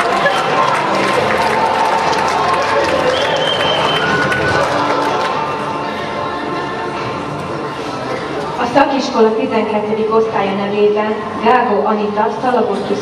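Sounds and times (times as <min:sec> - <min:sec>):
audience applause: 0:00.0 - 0:06.1
music playing: 0:00.0 - 0:13.0.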